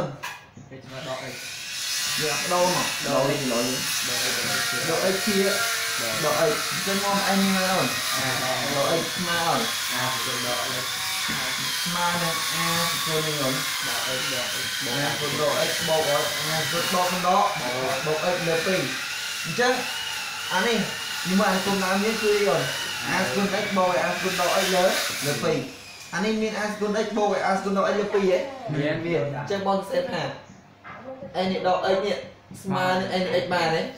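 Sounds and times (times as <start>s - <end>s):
high-pitched whine: 0.9s - 29.6s
man speaking: 2.2s - 18.9s, 20.5s - 29.6s
man talking: 2.2s - 19.8s, 20.5s - 29.6s.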